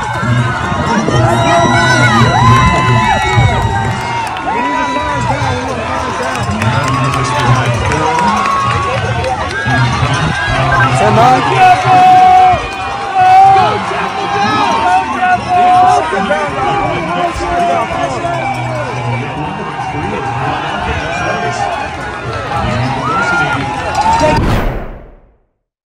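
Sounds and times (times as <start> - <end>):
people talking and calling out: 0.0 - 24.4.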